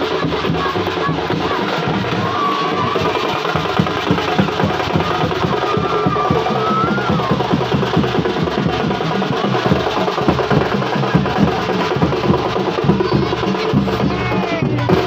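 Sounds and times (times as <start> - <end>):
fast dense drumming: 0.0 - 15.0.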